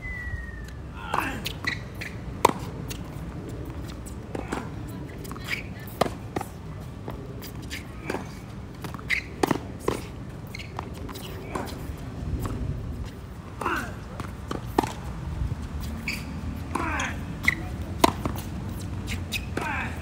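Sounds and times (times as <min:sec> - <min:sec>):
tennis balls struck and bouncing: 0:01.0 - 0:20.0.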